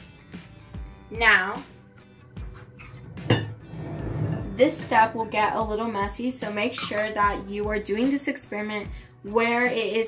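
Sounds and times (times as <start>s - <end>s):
quiet background music: 0.0s - 10.0s
metal lid clinking on glass jar: 6.7s - 7.2s.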